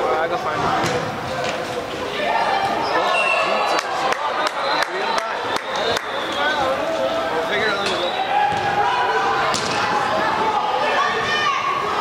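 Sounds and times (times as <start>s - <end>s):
people shouting in a hall: 1.3s - 12.0s
ball thump: 9.5s - 9.8s.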